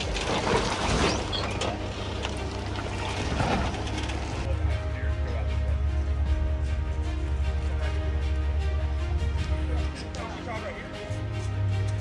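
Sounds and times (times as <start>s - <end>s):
tyres scraping over stone: 0.0s - 4.5s
background music: 0.0s - 12.0s
engine rumbling low: 0.0s - 12.0s.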